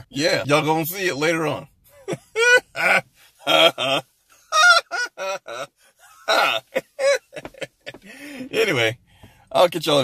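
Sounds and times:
man laughing hard: 2.0 - 8.1.

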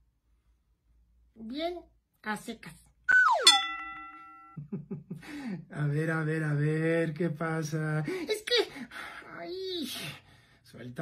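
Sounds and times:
cartoon tone sliding downward: 3.1 - 3.8
bright bell-like ding: 3.2 - 4.6.

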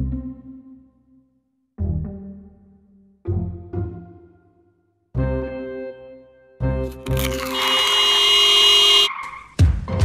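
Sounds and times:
car tyres screeching: 7.2 - 9.5.

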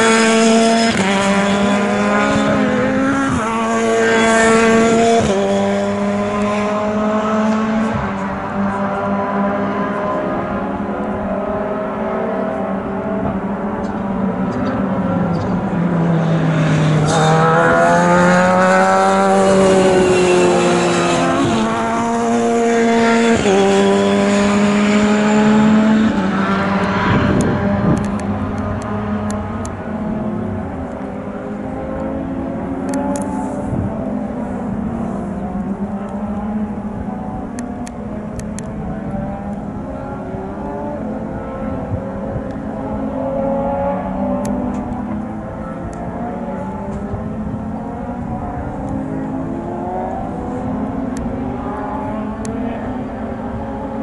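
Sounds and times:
race car engine at high revs: 0.0 - 54.0.

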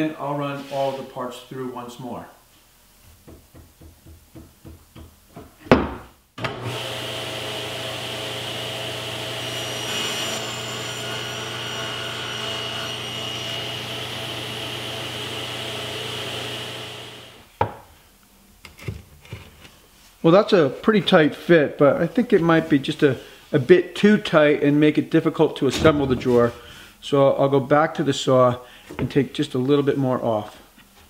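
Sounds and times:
table saw cutting plywood: 6.4 - 17.4.

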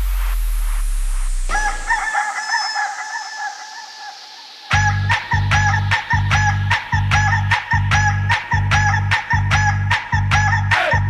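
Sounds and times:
low bass note: 0.0 - 1.9
rooster crowing: 1.5 - 5.8.

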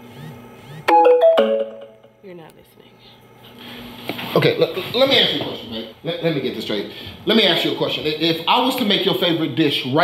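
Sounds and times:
smartphone notification chime: 0.9 - 2.1.

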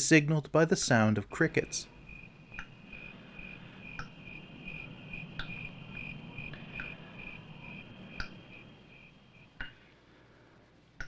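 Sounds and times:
crickets chirping: 0.6 - 10.7
sharp ticks: 1.8 - 3.1, 3.8 - 9.8.

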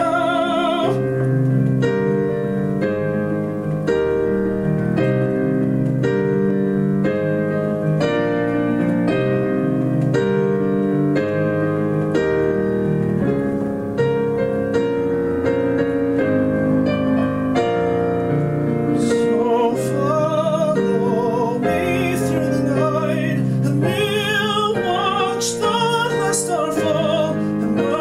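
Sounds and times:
solo piano chords: 0.0 - 28.0.

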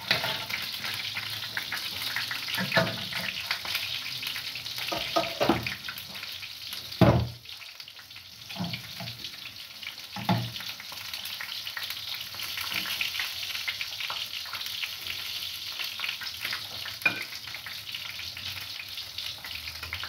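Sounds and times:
food sizzling in a pan: 0.0 - 20.0.

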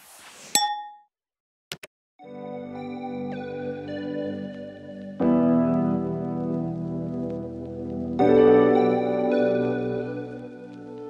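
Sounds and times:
bright ding: 0.6 - 1.0.

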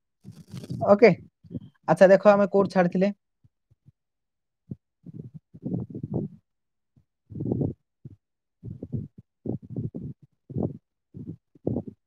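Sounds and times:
muffled choppy man's voice: 0.4 - 1.3.

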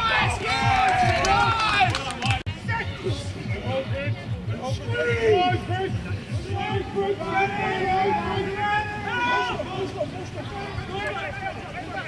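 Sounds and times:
men shouting: 0.0 - 1.9, 4.6 - 12.0.

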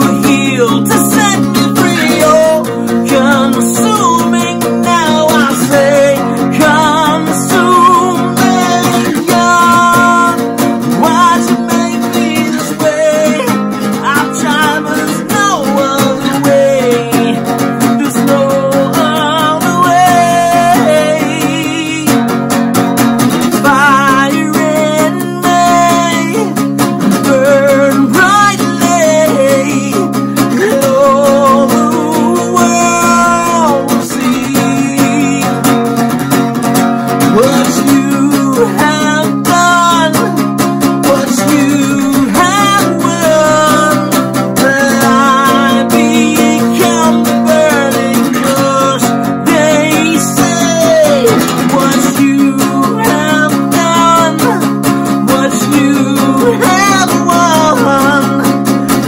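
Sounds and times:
acoustic guitar: 0.0 - 59.0
man singing with vibrato: 0.0 - 59.0.

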